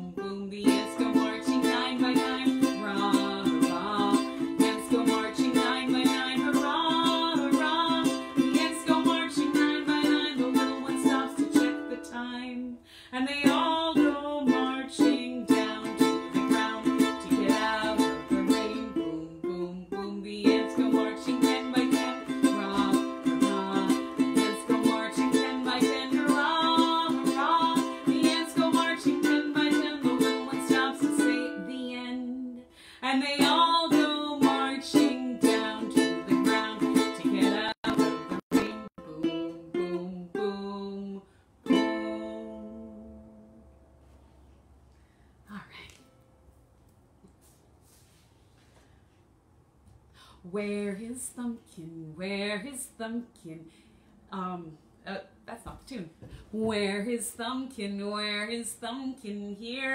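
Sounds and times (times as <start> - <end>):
small stringed instrument strumming: 0.0 - 12.7, 13.3 - 32.4, 33.2 - 40.6, 41.6 - 43.7.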